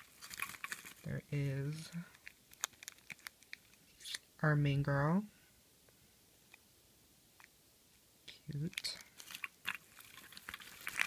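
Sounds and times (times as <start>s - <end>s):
crinkly rustling: 0.0s - 4.2s, 8.5s - 11.0s
plastic capsules clicking together: 2.1s - 4.2s.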